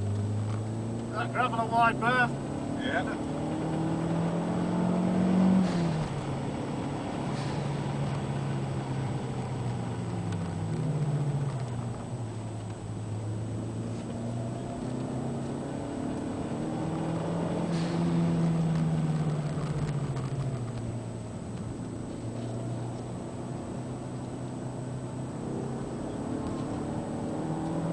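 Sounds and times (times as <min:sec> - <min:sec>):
car engine revving: 0:00.0 - 0:27.9.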